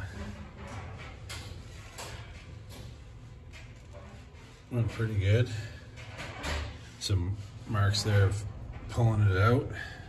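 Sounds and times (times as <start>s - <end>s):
faint clicks and knocks: 0.2s - 5.2s.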